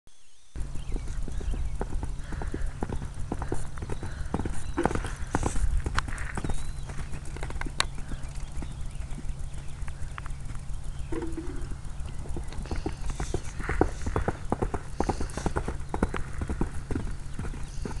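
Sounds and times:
steady low rumble: 0.6s - 18.0s
horse hoofbeats on sand: 0.8s - 9.8s, 12.2s - 18.0s.

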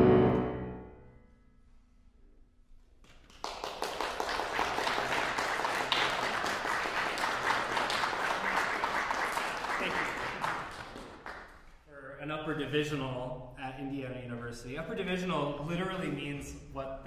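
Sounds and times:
audience applauding: 3.0s - 11.7s.

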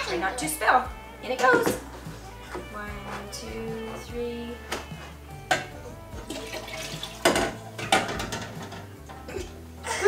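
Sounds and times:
liquid pouring into pot: 6.2s - 7.6s.

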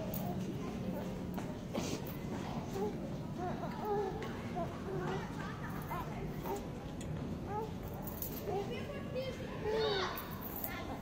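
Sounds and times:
children's voices at play: 2.2s - 11.0s.

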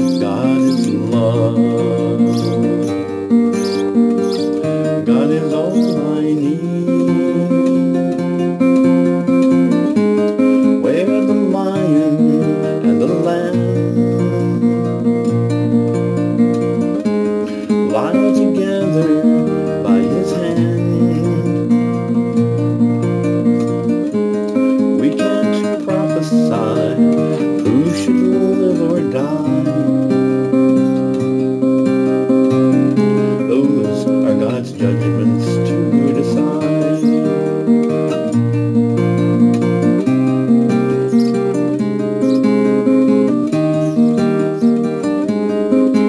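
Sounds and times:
strummed acoustic guitar chords: 0.0s - 46.0s.

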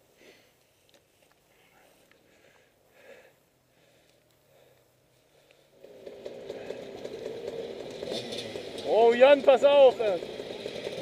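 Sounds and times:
vehicle engine running: 5.7s - 11.0s.

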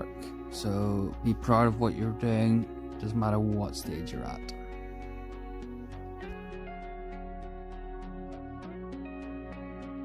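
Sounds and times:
soft instrumental background music: 0.0s - 10.0s.

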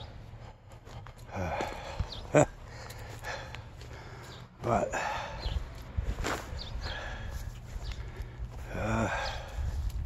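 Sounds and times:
footsteps on dry grass: 0.0s - 10.0s
steady low rumble: 0.0s - 10.0s.

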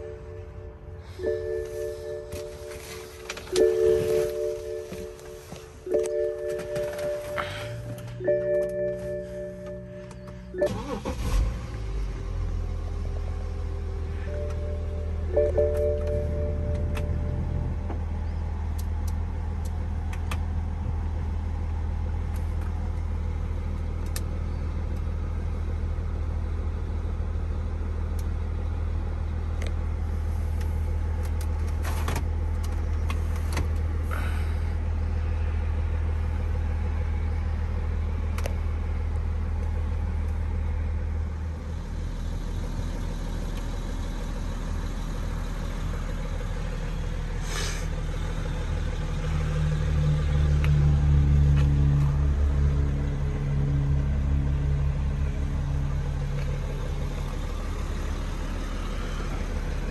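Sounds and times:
diesel engine idling hum: 0.0s - 59.9s.

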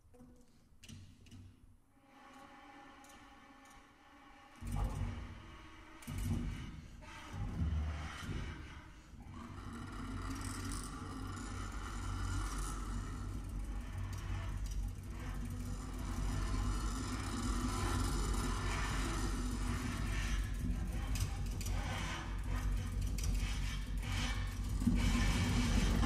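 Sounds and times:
saxophone low rumbling drone: 24.6s - 26.0s.

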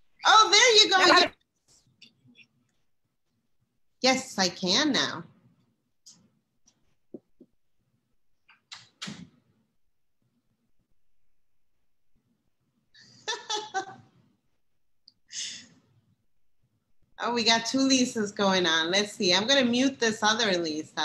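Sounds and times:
woman laughing: 13.0s - 14.0s.

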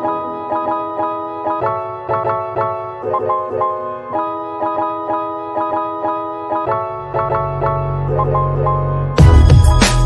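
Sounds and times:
steady beat: 9.2s - 10.0s.

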